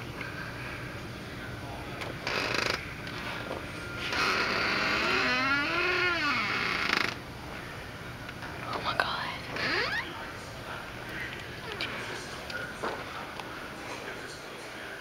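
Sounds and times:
breathy whispering: 8.6s - 9.7s, 10.6s - 12.7s.

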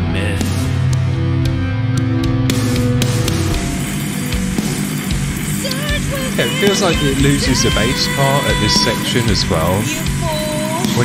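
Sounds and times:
distorted guitar: 0.0s - 11.0s
drum and cymbal hits: 0.0s - 11.0s
heavy metal track: 0.0s - 11.0s
sustained low bass: 0.0s - 11.0s.

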